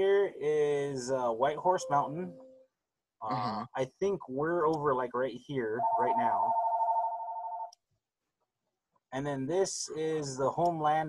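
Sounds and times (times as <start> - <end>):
steady electronic tone: 1.6 - 2.6.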